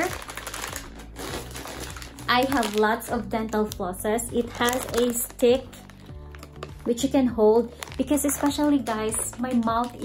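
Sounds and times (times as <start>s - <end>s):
plastic packs rustling and crinkling: 0.0s - 10.0s.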